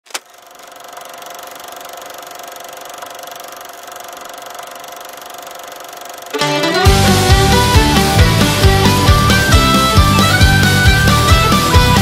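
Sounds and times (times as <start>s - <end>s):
film projector whirring and clicking: 0.0s - 12.0s.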